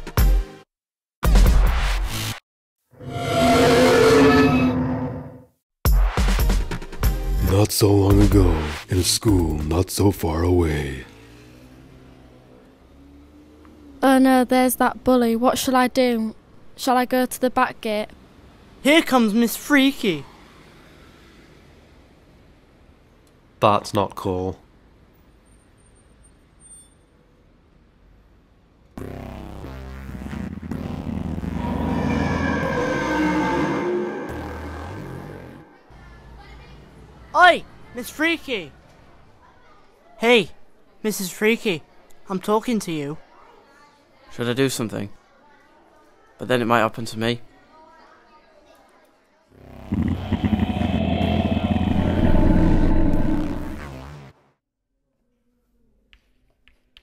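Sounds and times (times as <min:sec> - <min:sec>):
deep growl: 0:31.5 - 0:35.8, 0:49.7 - 0:53.8
deep monster roar: 0:31.5 - 0:35.8, 0:49.7 - 0:53.8.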